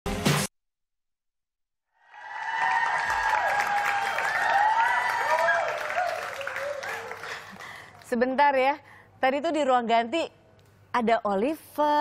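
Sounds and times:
audience applauding and cheering: 2.0 - 8.0.

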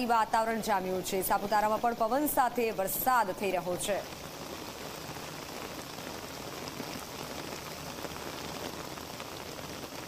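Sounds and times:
heavy rain falling: 0.0 - 10.0.

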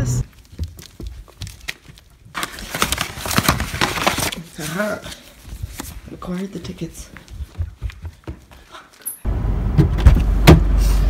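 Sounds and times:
paper rustling and crinkling: 0.2 - 8.0.

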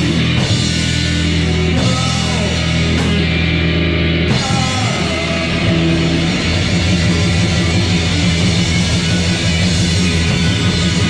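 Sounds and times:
drum kit: 0.0 - 11.0
electric guitars: 0.0 - 11.0.

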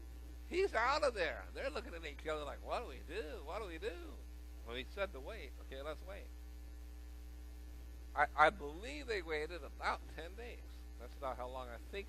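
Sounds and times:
low electrical mains hum: 0.0 - 12.0
man speaking: 0.5 - 6.3, 8.2 - 12.0.

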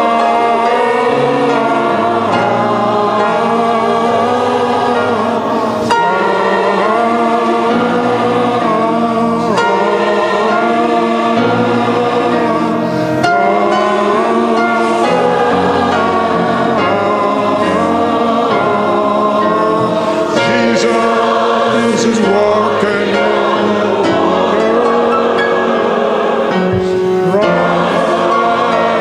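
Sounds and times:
large crowd singing a chorus: 0.0 - 29.0.

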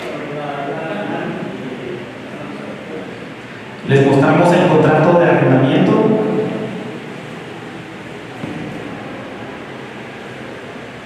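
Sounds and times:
room hiss: 0.0 - 11.0
man's voice: 3.9 - 6.6.

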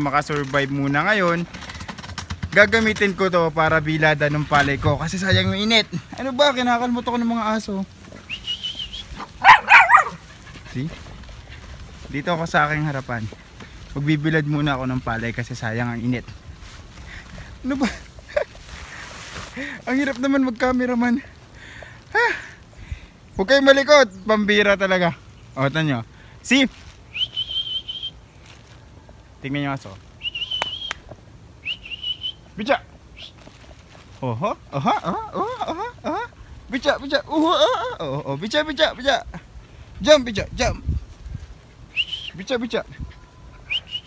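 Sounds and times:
small dog yipping: 9.2 - 10.4
person whistling high note: 30.2 - 31.0.

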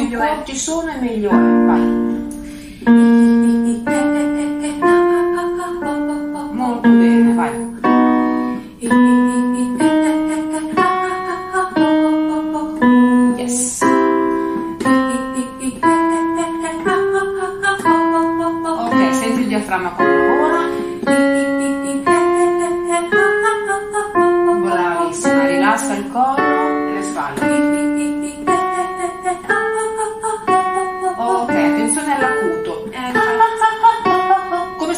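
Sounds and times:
digital piano notes: 0.0 - 34.9.

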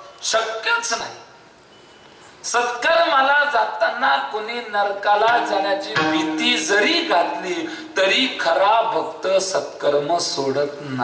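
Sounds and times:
man singing devotional song: 2.5 - 10.4.

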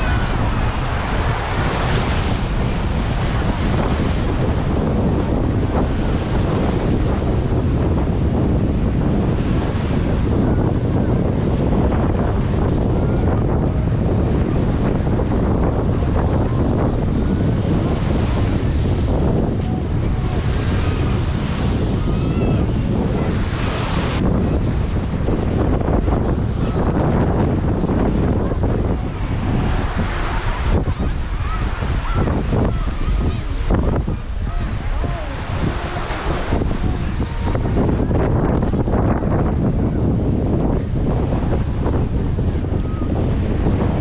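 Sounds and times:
waves washing on beach: 0.0 - 44.0
wind buffeting microphone: 0.0 - 44.0.

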